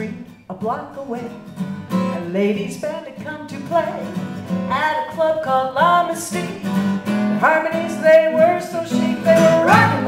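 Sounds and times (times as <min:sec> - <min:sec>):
acoustic guitars strumming swing: 0:00.0 - 0:10.0
women singing: 0:04.7 - 0:06.6, 0:07.4 - 0:10.0.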